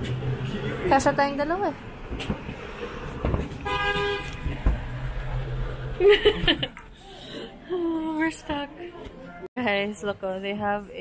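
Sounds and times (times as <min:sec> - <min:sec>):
car horn honk: 0:03.6 - 0:04.6
low thump: 0:04.5 - 0:05.0.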